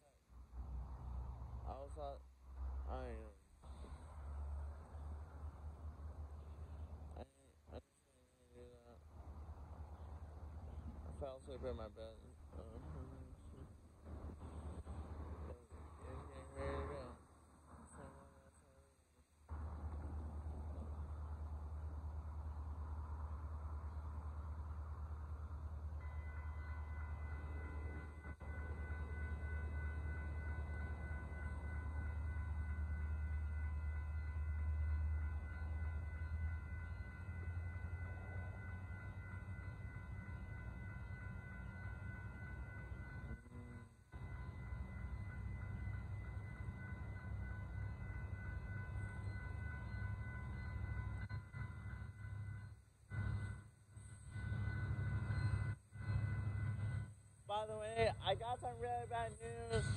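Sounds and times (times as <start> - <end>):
crossing bell ringing: 0.0 - 59.9
freight train rumble: 0.0 - 59.9.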